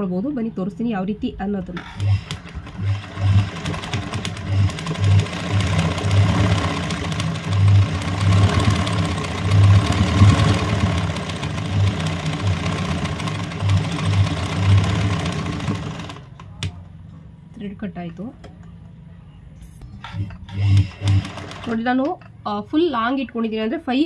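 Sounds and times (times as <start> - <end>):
sewing machine running: 1.8 - 16.4, 20.0 - 22.0.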